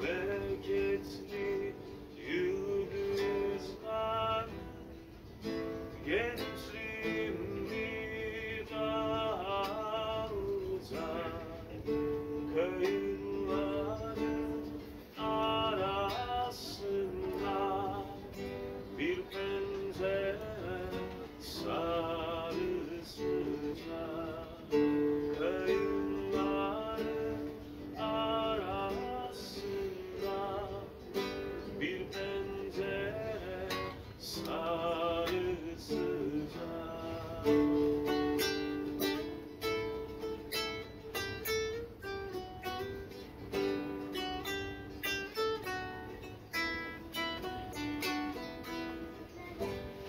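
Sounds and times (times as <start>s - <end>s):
man singing: 0.0s - 50.0s
strummed acoustic guitar: 0.0s - 50.0s.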